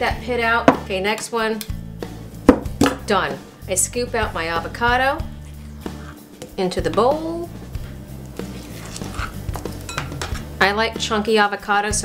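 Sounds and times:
soft background music: 0.0 - 12.0
fork scraping avocado: 5.2 - 6.6, 7.8 - 9.9.

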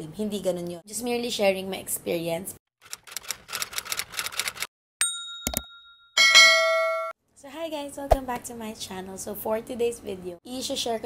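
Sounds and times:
bright bell chime: 5.0 - 7.2
ding: 5.0 - 7.2.

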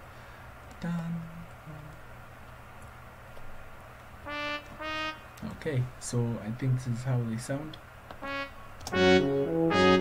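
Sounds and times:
synthesized trumpet notes: 4.3 - 5.4, 8.2 - 10.0.

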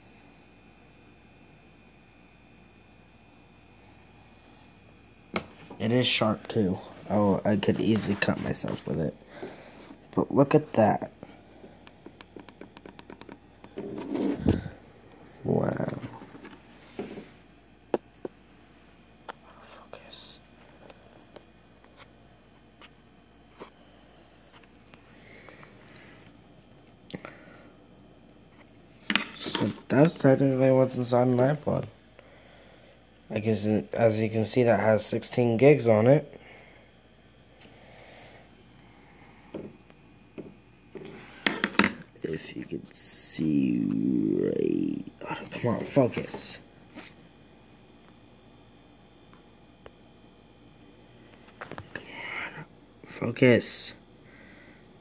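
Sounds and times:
fingers tapping device casing: 12.0 - 13.4.

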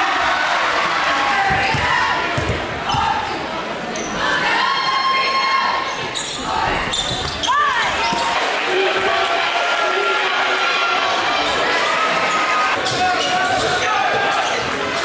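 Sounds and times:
crowd chatter: 0.0 - 15.0
basketball bouncing on wooden floor: 1.5 - 3.1
shoe squeak: 6.0 - 8.3.

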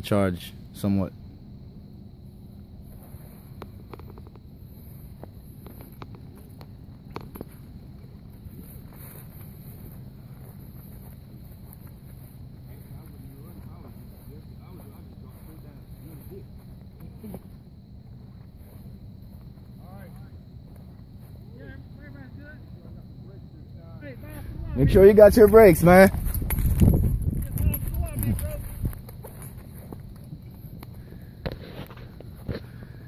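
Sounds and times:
faint distant voices: 8.6 - 26.0
wind rumble on microphone: 24.3 - 33.0.

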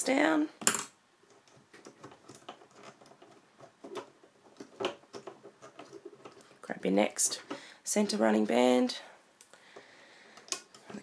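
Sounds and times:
loom bands clicking and rubbing: 0.6 - 8.9, 9.8 - 11.0.

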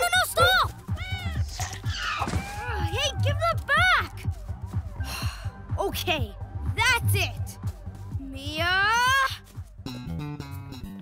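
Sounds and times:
background music with bass beat: 0.0 - 11.0
cartoon cat meowing: 0.9 - 1.7.

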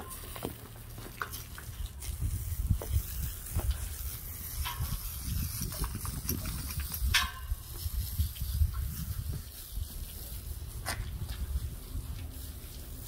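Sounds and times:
hose water spraying: 0.0 - 13.0.

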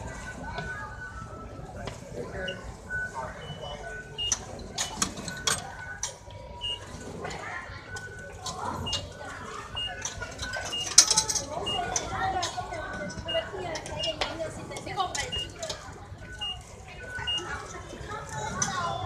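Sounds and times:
background chatter of voices: 0.0 - 19.0
short high electronic beeps: 2.4 - 5.6, 9.8 - 12.0, 16.3 - 17.5.

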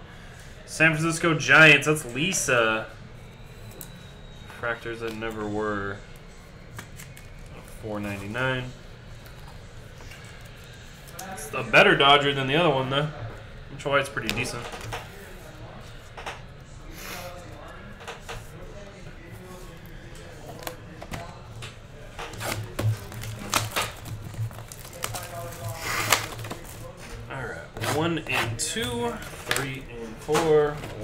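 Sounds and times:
foil packs rustling: 22.2 - 31.0.

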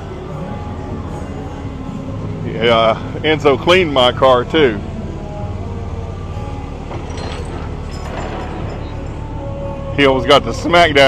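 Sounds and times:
faint music: 0.0 - 11.0
traffic engine rumble: 0.0 - 11.0.

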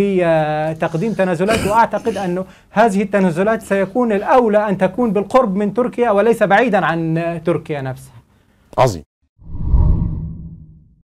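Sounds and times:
low whoosh: 9.4 - 11.0.

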